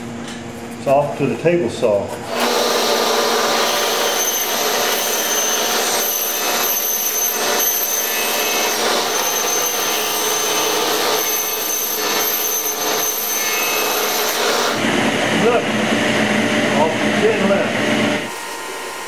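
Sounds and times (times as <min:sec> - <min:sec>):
table saw whining: 0:02.3 - 0:19.0.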